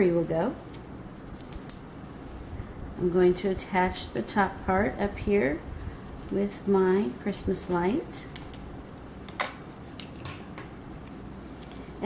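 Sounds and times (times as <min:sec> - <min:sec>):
aluminium foil crinkling: 0:00.6 - 0:01.9, 0:07.6 - 0:11.9
clear tape rustling: 0:00.6 - 0:02.6, 0:05.7 - 0:12.0.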